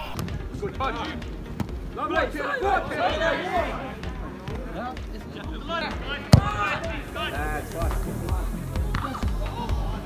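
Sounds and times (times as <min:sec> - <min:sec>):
ball thump: 0:00.0 - 0:00.5, 0:01.5 - 0:01.8, 0:06.3 - 0:06.9, 0:08.8 - 0:09.2
voices shouting: 0:00.0 - 0:10.0.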